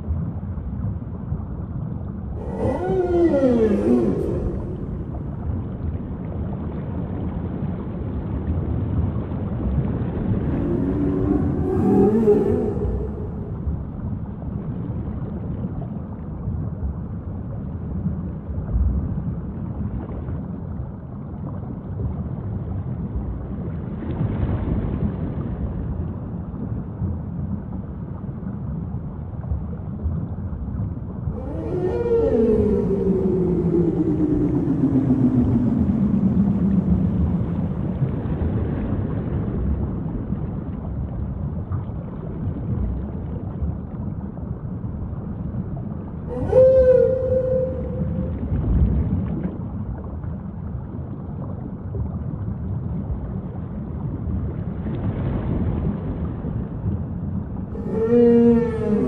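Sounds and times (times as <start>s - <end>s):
low rumble: 0.0s - 59.0s
whale calls: 2.3s - 5.6s, 10.2s - 14.5s, 31.2s - 38.4s, 46.1s - 49.8s, 57.6s - 59.0s.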